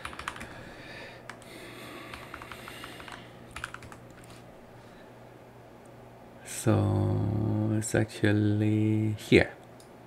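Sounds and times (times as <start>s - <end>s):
computer keyboard typing: 0.0s - 0.5s, 2.1s - 4.2s.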